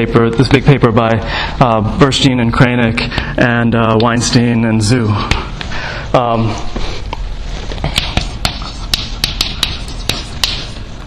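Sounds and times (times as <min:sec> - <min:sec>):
chalk scratching: 0:07.6 - 0:11.0
chalk tapping on blackboard: 0:07.8 - 0:10.8.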